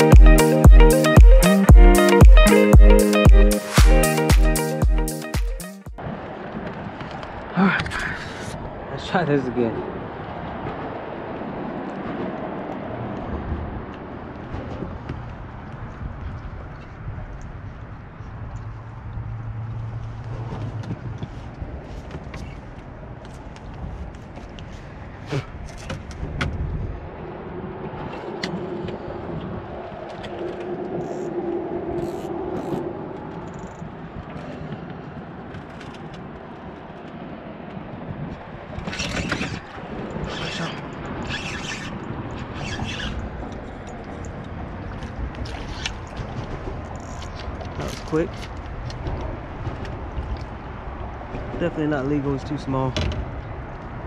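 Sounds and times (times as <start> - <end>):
passing vehicle hum: 6.0 - 47.8
traffic rumble on bridge: 6.0 - 54.0.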